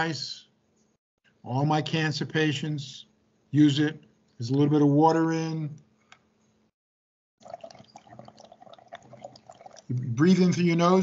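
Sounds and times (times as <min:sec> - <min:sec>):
breath bubbling through water: 0:07.4 - 0:09.9.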